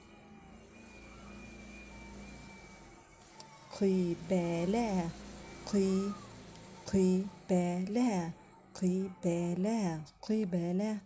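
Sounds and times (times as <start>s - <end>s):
faint high-pitched tone: 0.0s - 9.9s.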